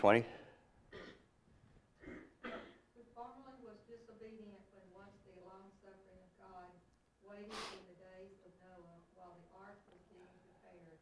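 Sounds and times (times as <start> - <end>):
sharp sniff: 7.5 - 7.9.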